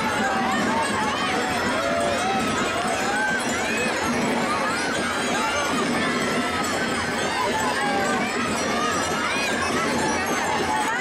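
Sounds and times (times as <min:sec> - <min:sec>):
crowd chatter and calls: 0:00.0 - 0:11.0.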